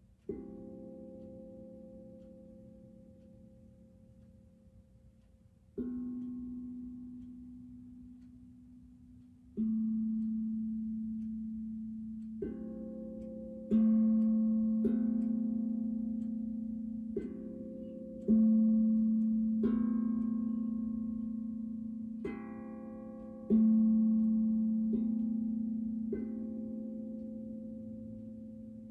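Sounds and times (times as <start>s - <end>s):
steel tongue drum notes: 0.0s - 28.9s.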